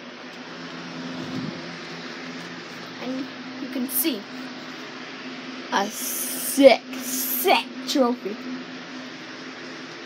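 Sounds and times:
low mechanical hum with hiss: 0.0s - 10.0s.

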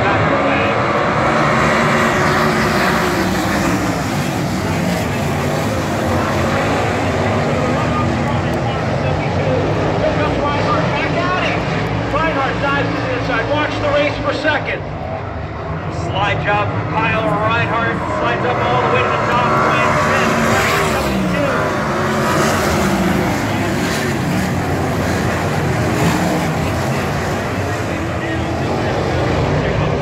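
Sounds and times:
race car engines at full throttle: 0.0s - 30.0s
voices: 0.0s - 30.0s.

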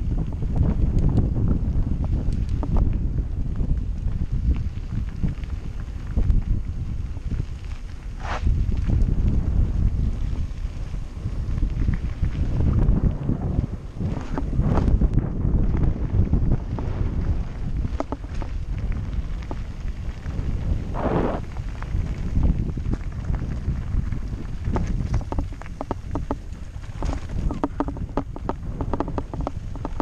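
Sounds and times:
bike rattling: 0.0s - 30.0s
wind buffeting microphone: 0.0s - 30.0s
tyres crunching on gravel: 2.0s - 30.0s.

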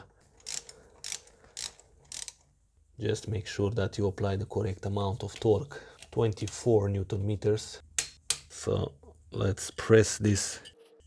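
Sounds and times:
ratchet wrench clicking: 0.4s - 2.4s.

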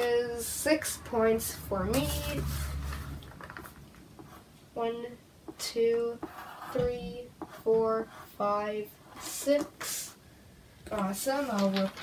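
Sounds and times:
low rumble of movement: 1.0s - 4.2s
pencil scratching on paper: 4.2s - 4.5s, 6.2s - 10.1s.

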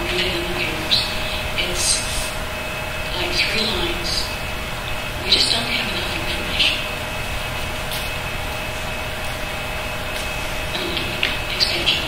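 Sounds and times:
ventilation rumble and hum: 0.0s - 12.0s.

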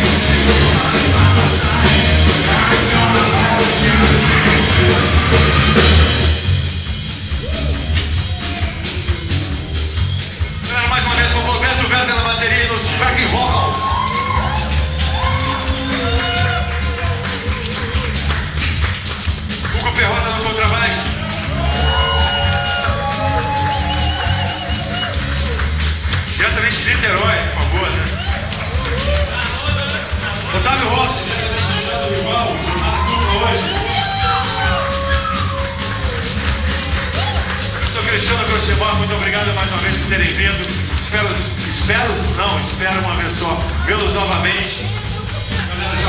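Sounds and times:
electric guitar bent notes: 0.0s - 21.6s
blues band playing: 0.0s - 46.0s
drum hits: 0.0s - 46.0s
electric bass line: 0.0s - 46.0s.

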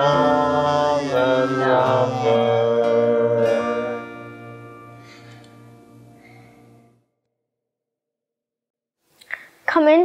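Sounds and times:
family singing a hymn: 0.0s - 4.6s.

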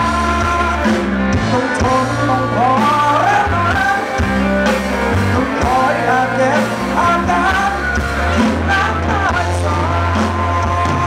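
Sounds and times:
live rock band: 0.0s - 11.0s
man singing: 0.0s - 11.0s.

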